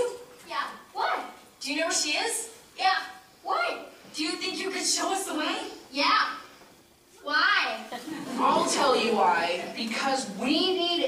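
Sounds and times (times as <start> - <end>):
young actors' voices: 0.0 - 11.0.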